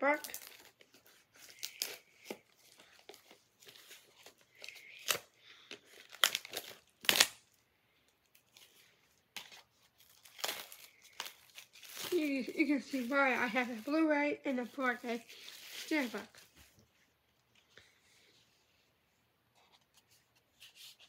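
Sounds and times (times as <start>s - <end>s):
plastic wrap crinkling and tearing: 0.0s - 16.8s.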